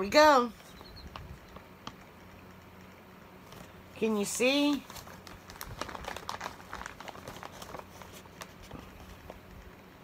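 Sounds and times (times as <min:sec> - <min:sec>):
plastic bag crinkling: 0:04.3 - 0:09.6.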